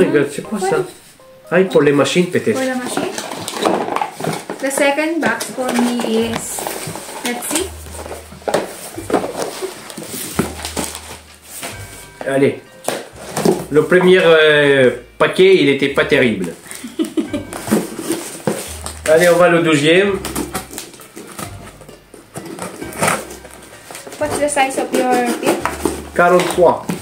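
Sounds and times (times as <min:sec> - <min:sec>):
quiet background music: 0:00.0 - 0:27.0
packaging rustling and knocking: 0:02.4 - 0:14.3, 0:16.4 - 0:27.0
knife scoring packing tape: 0:22.3 - 0:23.4.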